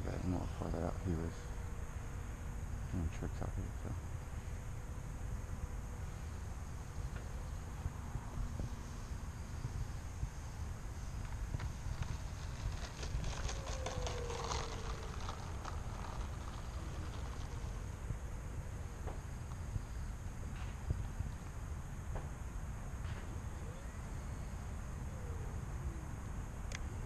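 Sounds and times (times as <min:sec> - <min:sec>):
distant electric motor whine: 0:00.0 - 0:27.0
wind rumbling on microphone: 0:00.0 - 0:27.0.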